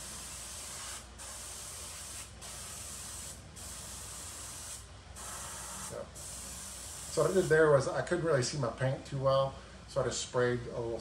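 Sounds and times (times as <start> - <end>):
airbrush spraying hiss: 0.0 - 7.7.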